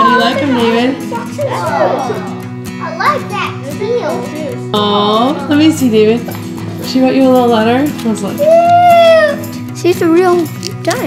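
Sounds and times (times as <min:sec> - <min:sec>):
children chattering: 0:00.0 - 0:05.8
background music: 0:00.0 - 0:11.0.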